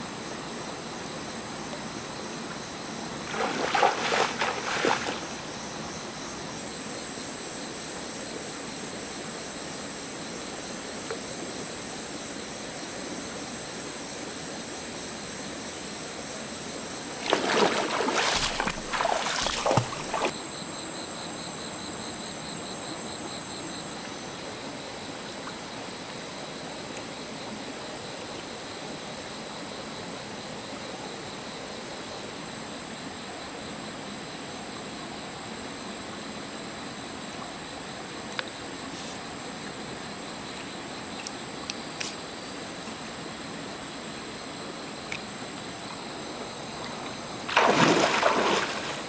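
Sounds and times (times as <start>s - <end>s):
stream water: 0.0s - 20.6s, 22.9s - 49.0s
night insects chorus: 0.0s - 49.0s
splashing in shallow water: 3.2s - 5.5s, 17.2s - 20.4s, 46.8s - 49.0s.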